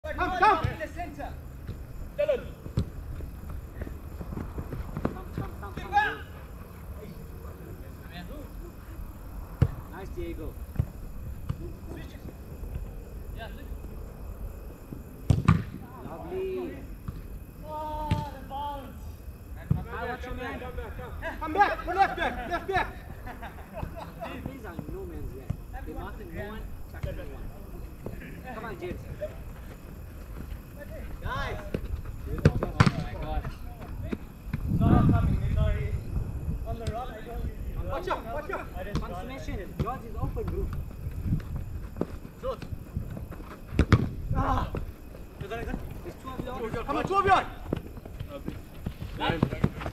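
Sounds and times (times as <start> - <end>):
football kicked thuds: 2.6 - 5.9, 10.7 - 11.7, 14.9 - 15.8, 31.6 - 34.7, 38.9 - 49.9
players shouting: 5.0 - 6.5
ball being struck: 15.3 - 15.7, 32.4 - 33.0.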